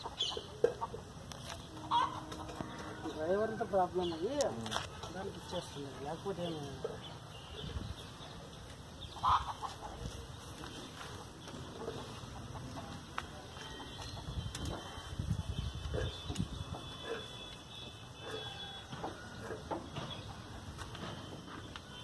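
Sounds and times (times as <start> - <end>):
chickens clucking: 0.0 - 7.2, 8.4 - 17.6, 18.2 - 21.6.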